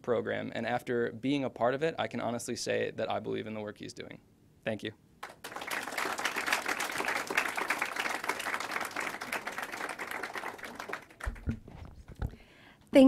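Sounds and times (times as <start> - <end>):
audience applauding: 5.2 - 12.0
low thumps: 11.2 - 12.4.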